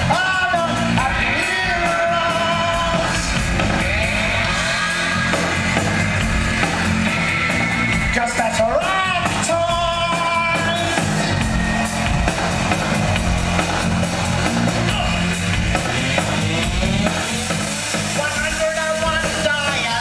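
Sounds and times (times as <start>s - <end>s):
live rock band playing loud: 0.0s - 20.0s.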